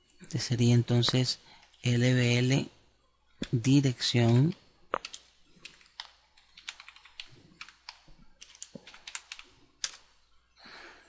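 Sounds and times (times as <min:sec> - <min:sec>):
computer keyboard typing: 0:03.4 - 0:10.1.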